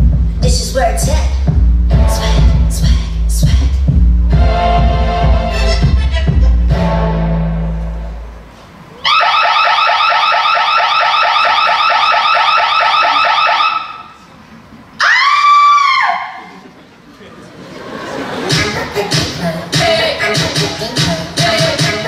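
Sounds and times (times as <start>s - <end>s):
rising electronic alarm warble: 9.1s - 14.1s.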